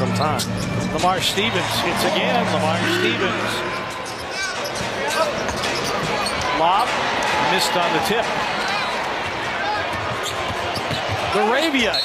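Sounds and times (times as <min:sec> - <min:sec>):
arena crowd murmur: 0:01.3 - 0:12.0
sneaker squeaks: 0:03.7 - 0:06.6, 0:10.1 - 0:12.0.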